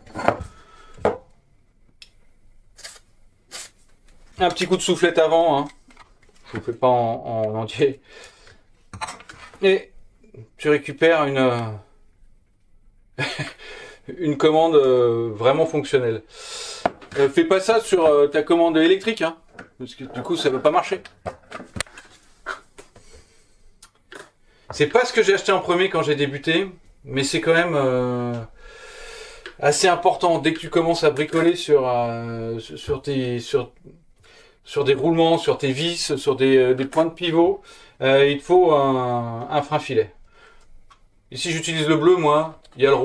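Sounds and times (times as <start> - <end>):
bottles and cans knocking on workbench: 0.0 - 1.2.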